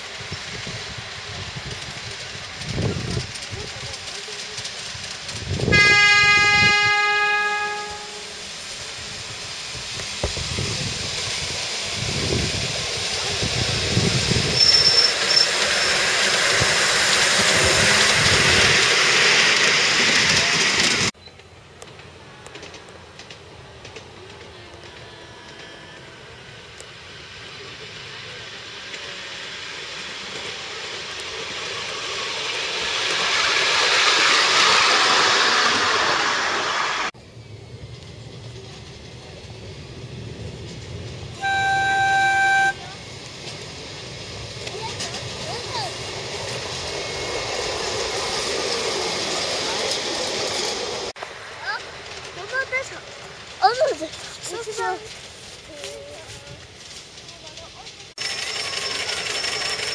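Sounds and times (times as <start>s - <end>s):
train passing: 0.0s - 59.9s
train wheels clattering on rail: 0.0s - 59.9s
locomotive horn toot: 5.7s - 8.4s, 41.4s - 42.9s.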